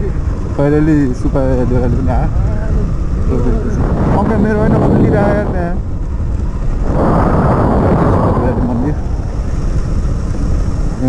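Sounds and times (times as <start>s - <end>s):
motorcycle engine rumble: 0.0s - 11.0s
wind on microphone: 0.0s - 11.0s.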